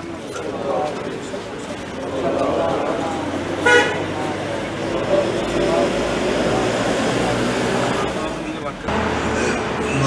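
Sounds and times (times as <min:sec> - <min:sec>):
vehicle horn toot: 0:03.6 - 0:04.0
man talking: 0:08.3 - 0:10.0.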